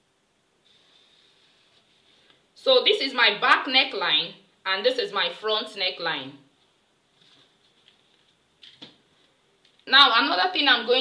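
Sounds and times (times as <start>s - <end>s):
soft paper rustles: 6.6s - 9.9s.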